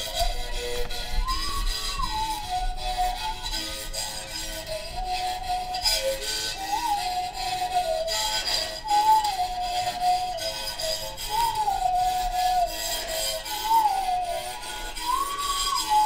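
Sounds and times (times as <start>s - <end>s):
mouth bow whistle-like melody: 0.0s - 16.0s
stick rasping on string: 0.0s - 16.0s.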